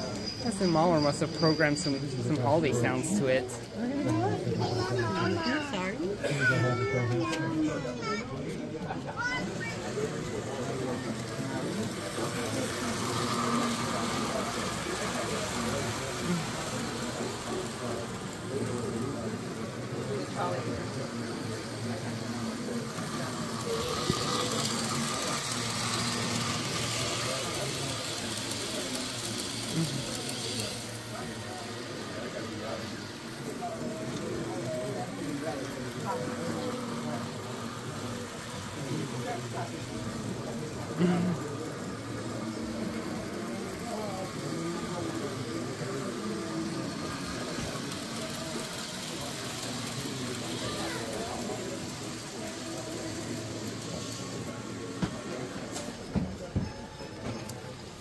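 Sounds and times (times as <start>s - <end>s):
indistinct chatter in a hall: 0.0s - 58.0s
model trains running: 0.0s - 58.0s.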